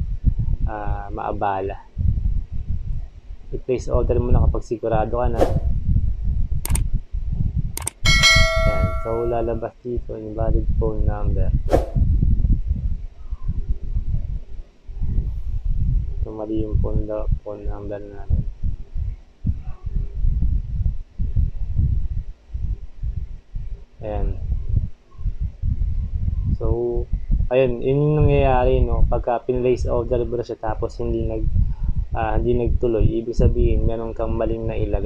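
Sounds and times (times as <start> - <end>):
rumbling and bumping on microphone: 0.0 - 1.2, 1.8 - 9.6, 10.5 - 29.9, 30.9 - 35.0.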